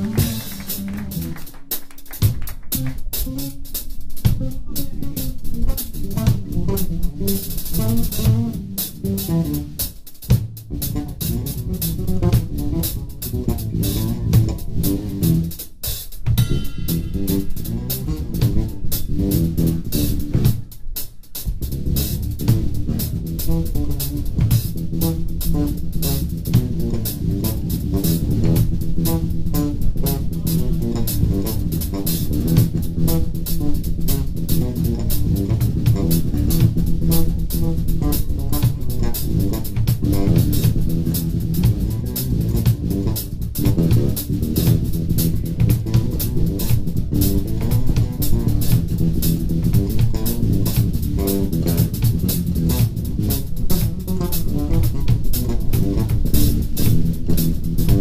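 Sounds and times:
drum kit with cymbals: 0:00.0 - 0:58.0
electric bass line: 0:00.0 - 0:58.0.

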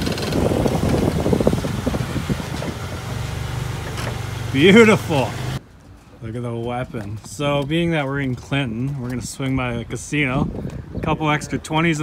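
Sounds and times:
car engine idling: 0:00.0 - 0:05.6.

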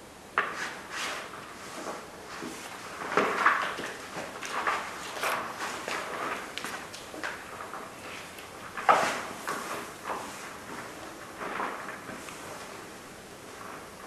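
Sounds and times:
objects knocking and scraping: 0:00.4 - 0:14.0.

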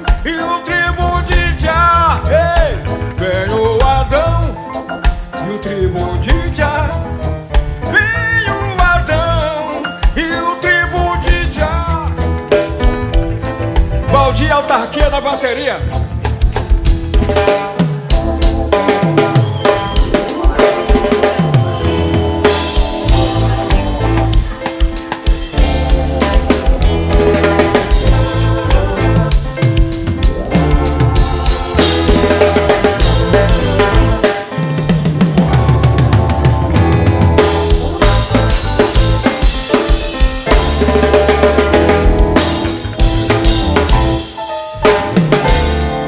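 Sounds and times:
live reggae band: 0:00.0 - 0:46.0
sliding bass notes: 0:00.0 - 0:46.0
drum kit hits: 0:08.8 - 0:46.0.

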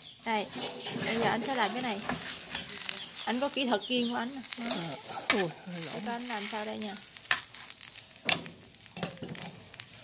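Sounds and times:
crepe sizzling in oil: 0:00.0 - 0:10.0
spatula striking pan: 0:07.2 - 0:09.8.

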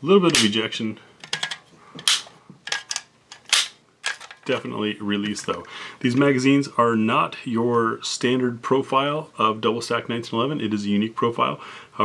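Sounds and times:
pistol magazine release clicks: 0:00.3 - 0:00.6, 0:01.3 - 0:04.2.

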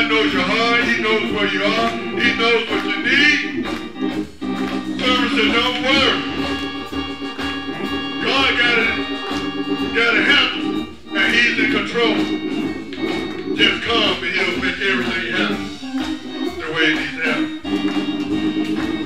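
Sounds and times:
man preaching: 0:00.0 - 0:04.0, 0:04.8 - 0:06.9, 0:07.6 - 0:17.7
organ sustained chords: 0:00.0 - 0:19.0.

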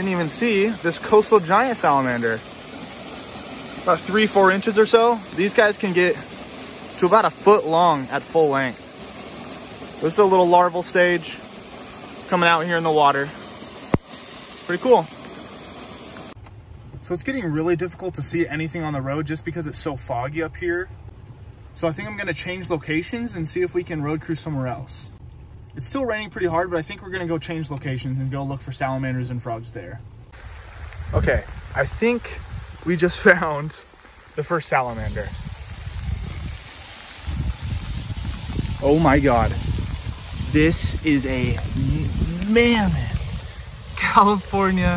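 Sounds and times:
heavy rain hissing: 0:00.0 - 0:16.4, 0:30.3 - 0:44.9
low rumbling on microphone: 0:30.4 - 0:33.2, 0:34.9 - 0:44.0.

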